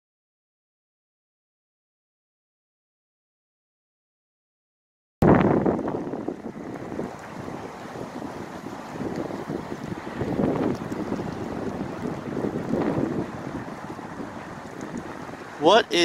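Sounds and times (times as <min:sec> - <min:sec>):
wind buffeting microphone: 0:05.2 - 0:16.0.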